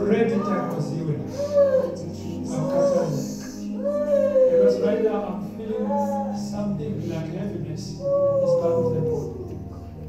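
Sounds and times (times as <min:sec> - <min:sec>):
person giving wavering cries: 0:00.0 - 0:09.9
steady low hum: 0:00.0 - 0:10.0.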